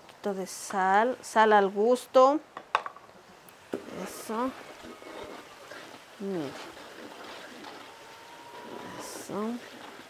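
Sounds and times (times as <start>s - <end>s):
onion and garlic sizzling: 3.4s - 10.0s
wooden spoon scraping: 3.7s - 10.0s.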